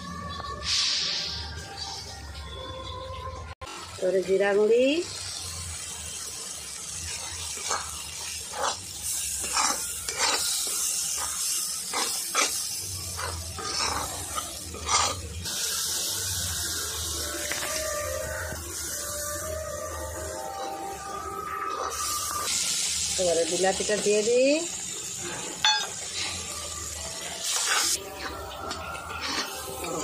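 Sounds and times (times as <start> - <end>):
spices sizzling in a wok: 0.0 - 2.4, 3.6 - 30.0
spatula scraping a pan: 7.1 - 15.6, 27.4 - 30.0.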